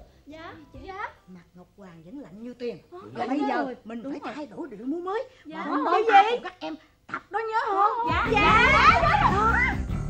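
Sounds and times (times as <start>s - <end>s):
women calling out excitedly: 7.3s - 9.8s.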